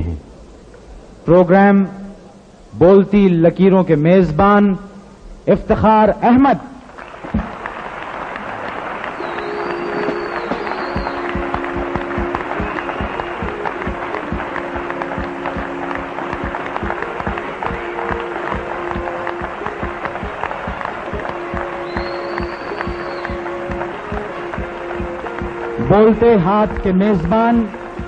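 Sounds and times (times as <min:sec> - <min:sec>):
audience applause: 0:06.7 - 0:28.0
music with long held notes: 0:07.1 - 0:28.0.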